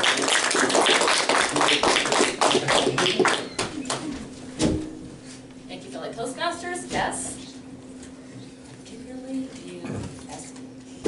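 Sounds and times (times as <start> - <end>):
small audience applauding: 0.0 - 4.2.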